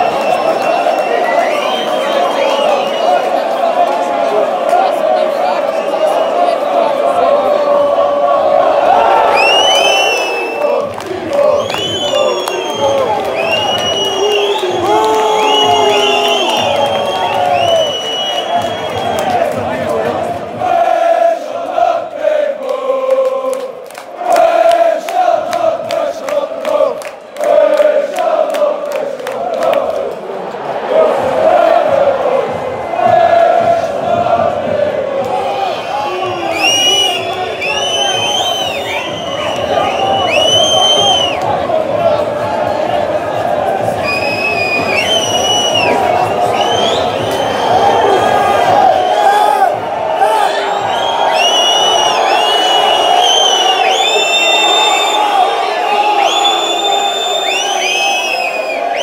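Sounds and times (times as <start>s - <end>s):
shrill whistle-like tones: 0.0s - 3.3s, 5.7s - 6.7s, 9.2s - 10.8s, 11.4s - 19.5s, 35.5s - 41.5s, 44.0s - 59.0s
crowd chanting: 0.0s - 59.0s
rhythmic hand clapping: 9.3s - 30.4s, 36.2s - 55.2s.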